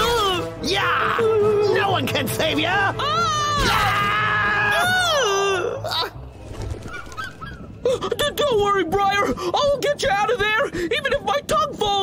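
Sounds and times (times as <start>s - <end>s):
cartoon man yelling: 0.0s - 5.8s.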